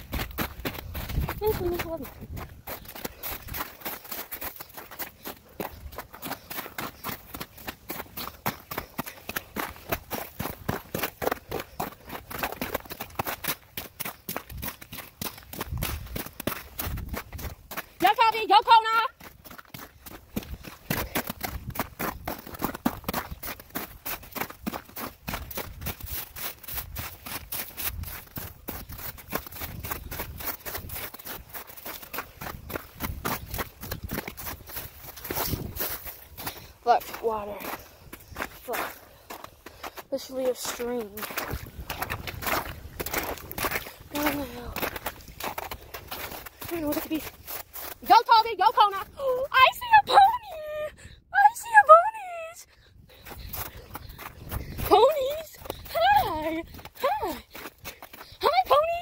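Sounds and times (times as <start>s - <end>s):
footsteps through snow and slush: 0.0s - 50.7s, 53.1s - 59.0s.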